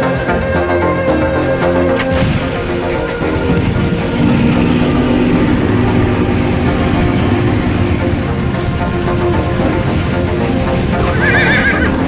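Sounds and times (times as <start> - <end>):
high wavering vibrato note: 1.4 - 9.0.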